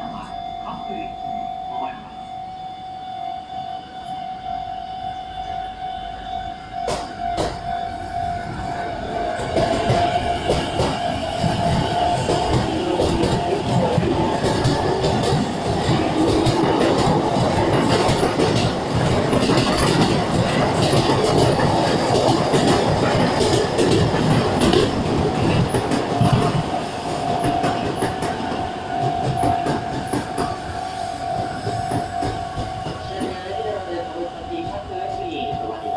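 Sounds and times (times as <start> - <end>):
electric train rumbling and clattering: 0.0 - 35.9
steady high tone: 0.0 - 35.9.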